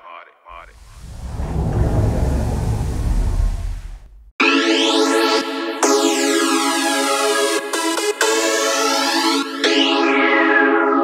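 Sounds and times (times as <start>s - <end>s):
low rumbling whoosh: 0.5s - 4.4s.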